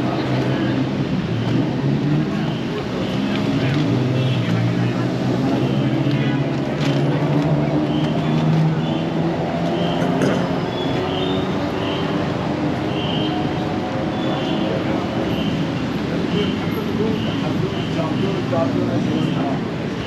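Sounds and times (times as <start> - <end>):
passers-by chattering: 0.0 - 20.0
traffic engines droning: 0.0 - 20.0.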